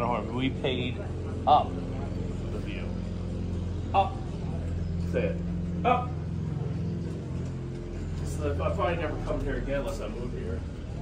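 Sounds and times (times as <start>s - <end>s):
low motor drone: 0.0s - 11.0s.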